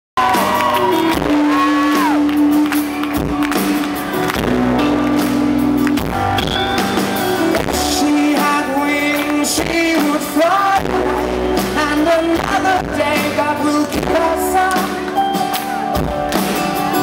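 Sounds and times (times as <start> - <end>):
shout from crowd: 0.2 - 2.4
sustained bass notes: 0.2 - 15.2
acoustic guitar: 0.2 - 17.0
drums: 0.2 - 17.0.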